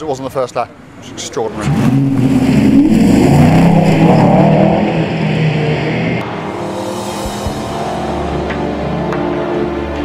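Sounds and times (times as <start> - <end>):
race car engine accelerating: 0.9 - 6.6
background music: 6.2 - 10.0.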